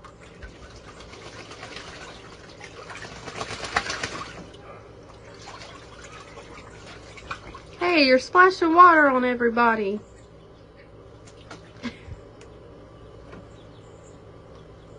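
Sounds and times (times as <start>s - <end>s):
duck splashing in water: 0.0s - 7.9s, 11.2s - 12.0s.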